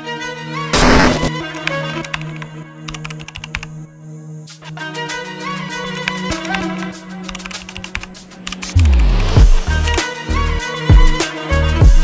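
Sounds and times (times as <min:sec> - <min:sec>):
background music: 0:00.0 - 0:12.0
keyboard typing clicks: 0:00.8 - 0:03.7, 0:05.9 - 0:10.0.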